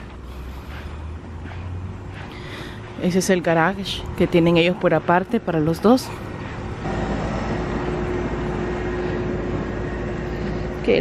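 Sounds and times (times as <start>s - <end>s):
machine hum: 6.3s - 11.0s.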